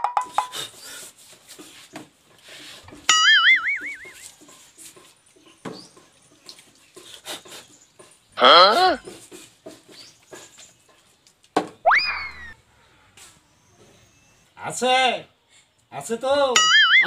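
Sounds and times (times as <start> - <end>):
warbling whistle sound effect: 3.1 - 4.2, 11.8 - 12.6.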